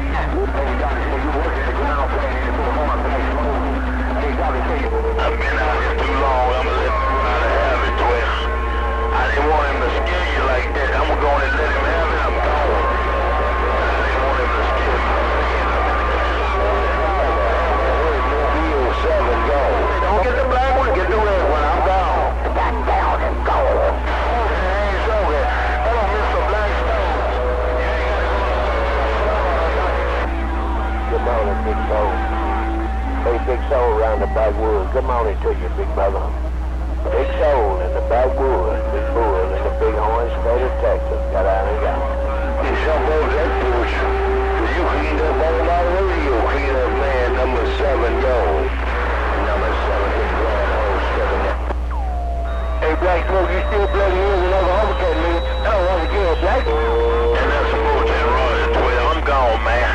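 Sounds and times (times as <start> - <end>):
constant low hum: 0.0 - 59.9
garbled radio voices: 0.0 - 59.9
radio carrier whistling tones: 0.0 - 59.9.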